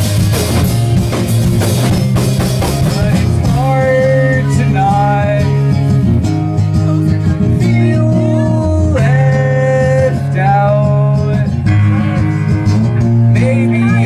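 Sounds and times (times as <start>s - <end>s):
bass guitar: 0.0s - 14.0s
drums: 0.0s - 14.0s
electric guitar: 0.0s - 14.0s.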